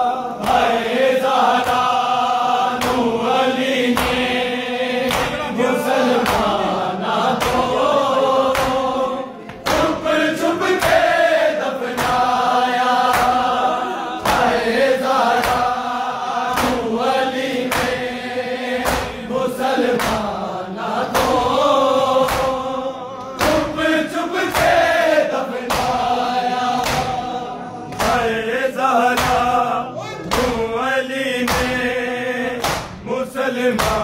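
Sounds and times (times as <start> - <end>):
men chanting together: 0.0 - 34.0
hands slapping chests: 1.5 - 4.4, 5.0 - 6.6, 7.2 - 11.2, 11.8 - 13.6, 14.2 - 15.8, 16.4 - 18.2, 18.8 - 20.4, 21.0 - 28.3, 29.1 - 29.6, 30.2 - 30.7, 31.4 - 31.9, 32.6 - 33.0, 33.7 - 34.0.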